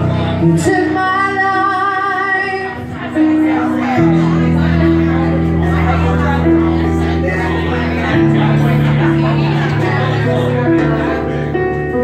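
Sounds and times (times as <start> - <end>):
keyboard: 0.0 - 12.0
woman singing: 0.4 - 4.2.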